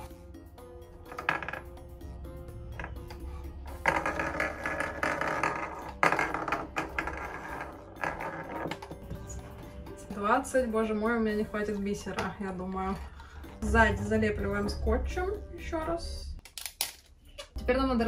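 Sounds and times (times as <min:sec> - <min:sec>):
light background music: 0:00.0 - 0:18.0.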